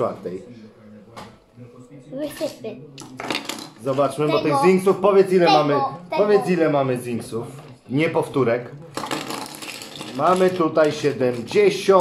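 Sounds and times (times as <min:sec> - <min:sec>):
plastic toy figures clattering: 0:02.4 - 0:04.2, 0:08.9 - 0:12.0.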